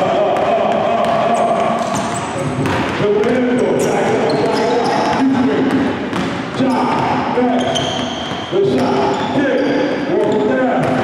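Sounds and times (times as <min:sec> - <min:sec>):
basketball dribbling on hardwood: 0:00.0 - 0:09.4, 0:10.1 - 0:11.0.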